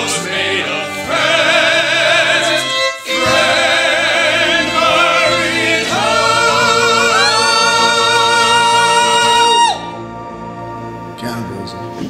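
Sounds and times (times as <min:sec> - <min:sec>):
voices singing operatic harmony: 0:00.0 - 0:11.3.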